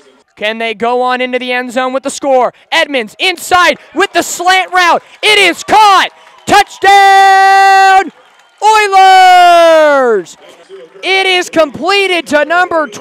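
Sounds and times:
man speaking: 0.0s - 13.0s
man calling out drawn-out: 0.4s - 10.3s.

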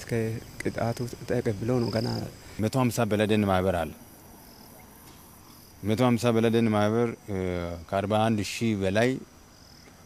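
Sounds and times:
man speaking: 0.0s - 4.0s, 5.8s - 9.3s
high-pitched insect trill: 0.1s - 6.6s, 9.2s - 9.9s.

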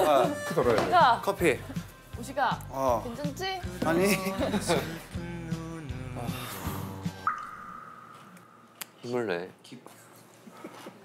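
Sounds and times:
comic droplet tone: 7.2s - 8.9s.

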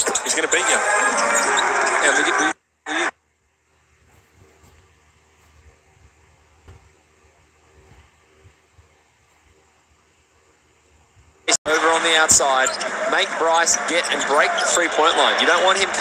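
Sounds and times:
broadcast commentary: 0.0s - 3.1s, 11.5s - 16.0s
soft low thumps: 4.0s - 7.1s.

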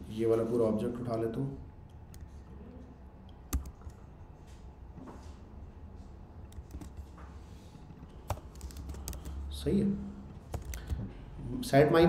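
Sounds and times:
computer keyboard typing: 3.5s - 4.0s, 6.5s - 7.1s, 8.2s - 9.5s, 10.4s - 11.2s.

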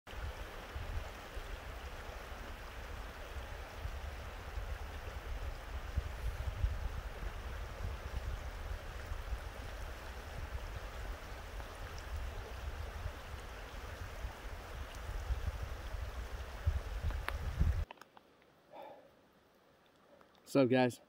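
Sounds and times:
water rushing over rocks: 0.1s - 17.9s.

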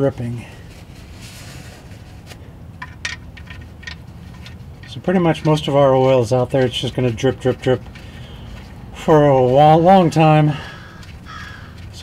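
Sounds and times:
low steady background noise: 0.0s - 12.0s
paper towel rustling: 0.4s - 2.5s.

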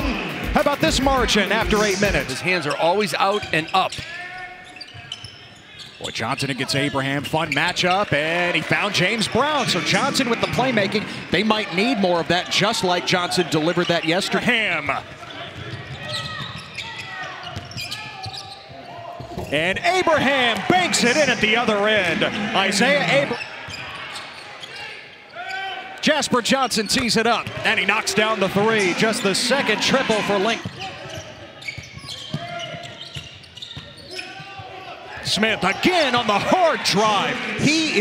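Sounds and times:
murmur of voices: 6.6s - 16.2s, 18.9s - 25.3s, 27.6s - 31.6s.

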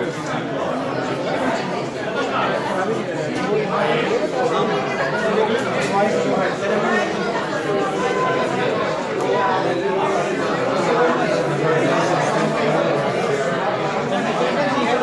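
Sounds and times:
chatter of many people: 0.0s - 15.0s.

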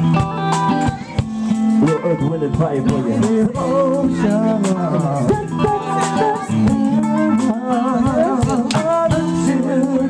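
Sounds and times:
guitar: 0.0s - 10.0s
live band playing: 0.0s - 10.0s.

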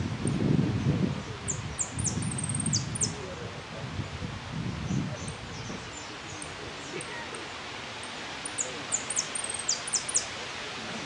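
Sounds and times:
finch singing: 1.5s - 3.2s, 5.2s - 10.3s.

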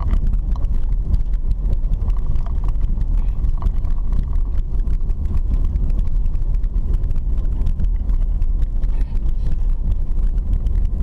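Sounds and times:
car tyres rumbling on dirt road: 0.0s - 11.0s
small clicks and rattles: 0.0s - 11.0s.

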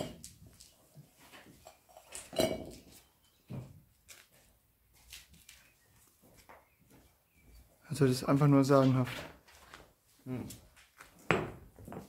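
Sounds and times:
knocks and clinks: 0.0s - 0.3s, 1.6s - 3.0s.

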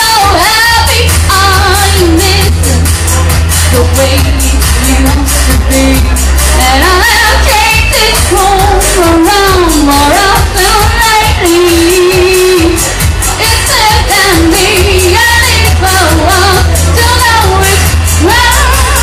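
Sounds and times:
loud band with heavy bass: 0.0s - 19.0s
woman singing into a microphone: 0.0s - 19.0s.

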